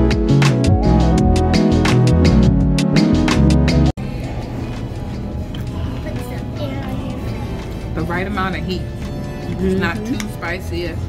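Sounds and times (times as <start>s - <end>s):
background music: 0.0s - 11.0s
murmur of distant voices: 4.0s - 11.0s.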